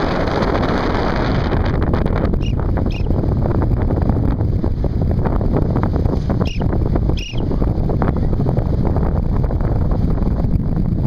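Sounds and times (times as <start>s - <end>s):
wind rush on microphone: 0.0s - 11.0s
short high chirps: 2.4s - 3.2s, 6.4s - 7.5s.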